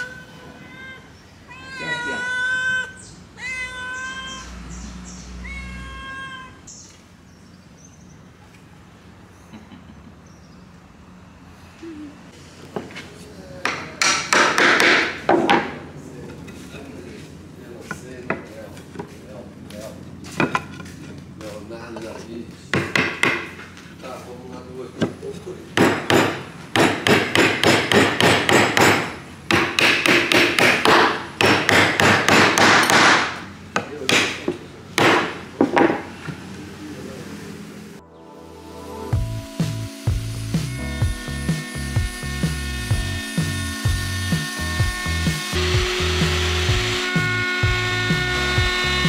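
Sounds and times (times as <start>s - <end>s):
hammer striking wood: 13.6s - 15.8s, 22.7s - 23.7s, 25.8s - 36.2s.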